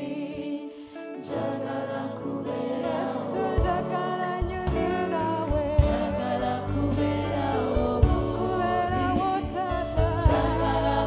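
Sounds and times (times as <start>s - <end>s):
backing music: 1.3s - 11.0s
woman singing into a microphone: 2.4s - 11.0s.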